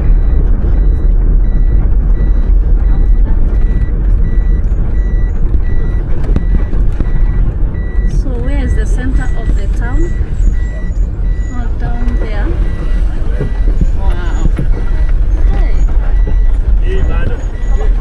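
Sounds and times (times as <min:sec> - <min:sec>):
engine and road rumble: 0:00.0 - 0:18.0
short electronic beeps: 0:00.0 - 0:18.0
people talking: 0:08.1 - 0:18.0.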